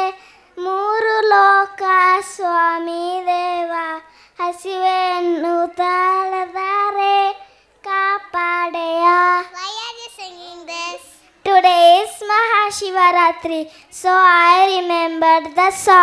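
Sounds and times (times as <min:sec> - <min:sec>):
girl singing unaccompanied: 0:00.0 - 0:16.0.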